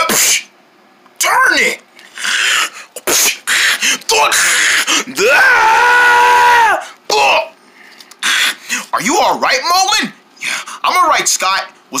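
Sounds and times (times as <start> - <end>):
person's high vocal cry: 2.2 - 7.5.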